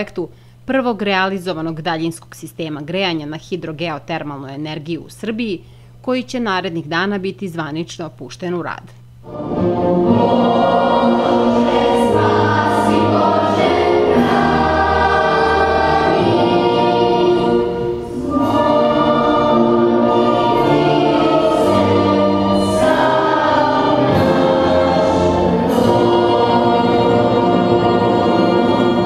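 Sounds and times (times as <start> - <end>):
choir singing long notes: 9.2 - 29.0.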